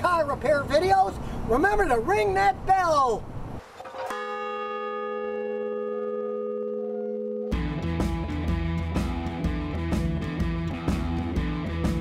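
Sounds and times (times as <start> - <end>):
large bell ringing: 4.0 - 8.0.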